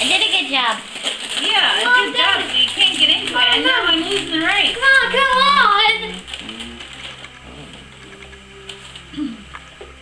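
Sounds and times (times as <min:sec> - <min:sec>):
paper rustling: 0:00.0 - 0:09.1.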